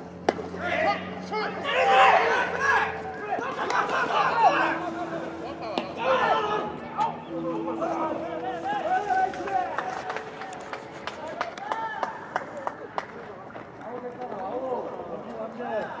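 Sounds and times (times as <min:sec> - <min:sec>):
men shouting: 0:00.5 - 0:10.2.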